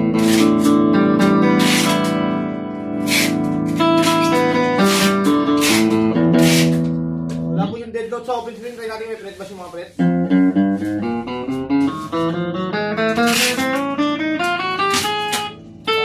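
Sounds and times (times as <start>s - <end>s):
electric guitar strumming chords: 0.0s - 7.7s, 10.0s - 16.0s.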